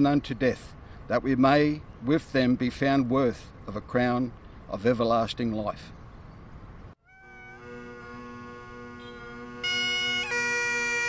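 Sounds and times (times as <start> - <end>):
bagpipe chanter melody: 7.0 - 11.0
bagpipe drones: 7.0 - 11.0.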